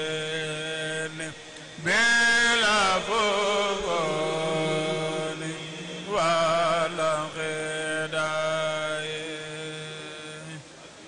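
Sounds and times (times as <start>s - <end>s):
men chanting into microphones: 0.0s - 10.7s.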